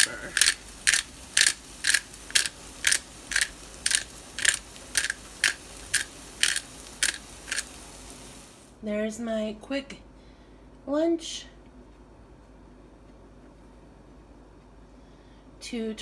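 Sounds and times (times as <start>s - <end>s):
pepper grinder crunching: 0.0s - 7.8s.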